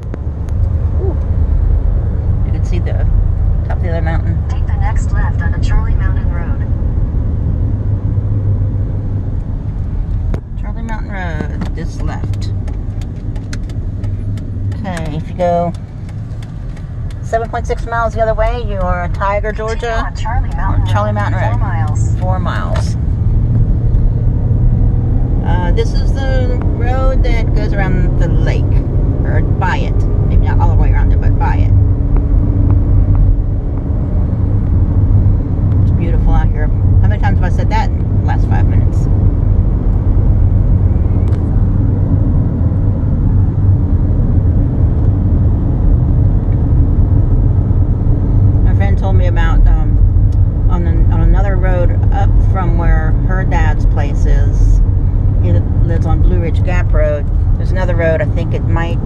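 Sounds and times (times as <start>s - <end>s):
car cabin road rumble: 0.0s - 59.0s
person speaking: 17.2s - 23.0s.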